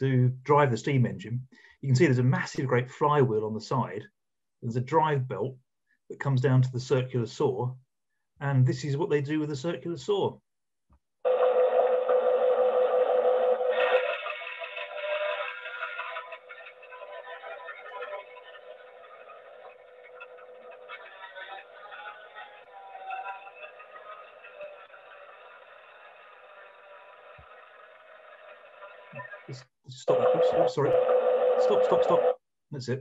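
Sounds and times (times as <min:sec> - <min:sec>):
circular saw whine: 0:11.3 - 0:15.4, 0:30.1 - 0:32.4.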